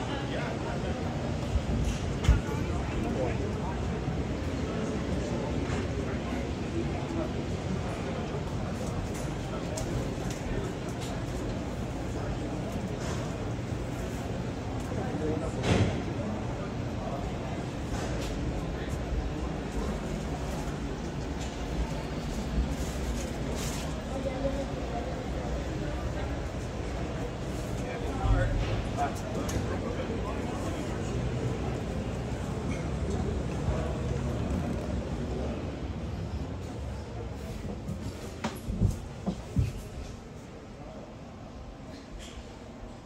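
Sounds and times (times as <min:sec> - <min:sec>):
indistinct crowd voices: 0:00.0 - 0:43.0.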